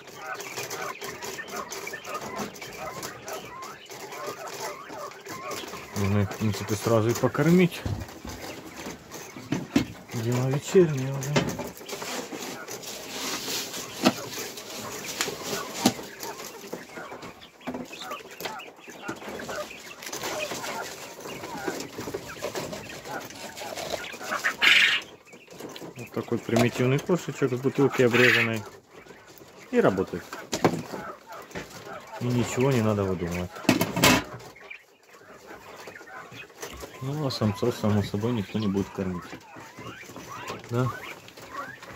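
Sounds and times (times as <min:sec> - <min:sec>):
quail chirping and clucking: 0:00.0 - 0:41.9
plastic bag rustling: 0:11.0 - 0:16.8.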